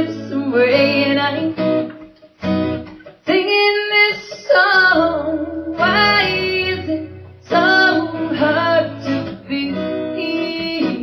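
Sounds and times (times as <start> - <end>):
woman singing: 0.0 - 1.9, 3.2 - 11.0
strummed acoustic guitar: 0.0 - 11.0.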